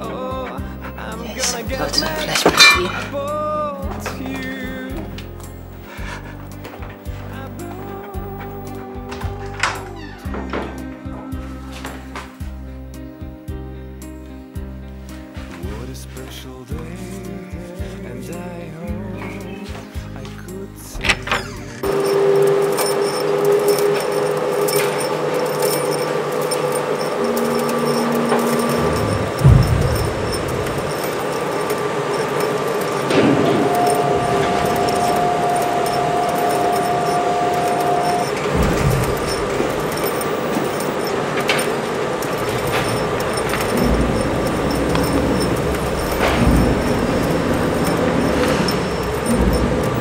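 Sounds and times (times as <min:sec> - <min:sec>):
metallic clanks and knocks: 0:00.0 - 0:11.1, 0:21.0 - 0:50.0
machine whining: 0:00.0 - 0:14.6, 0:20.9 - 0:50.0
factory machinery humming: 0:00.0 - 0:50.0.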